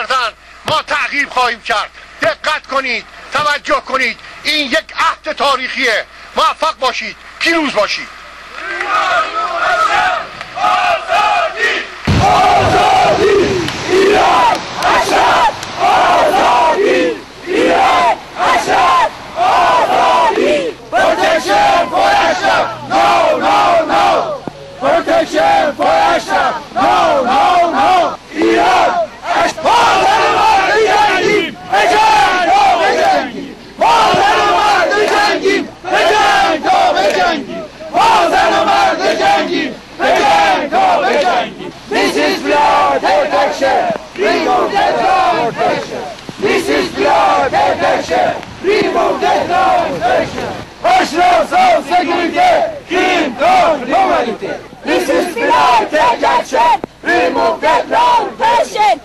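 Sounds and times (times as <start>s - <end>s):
crowd chanting slogans: 7.9s - 59.0s.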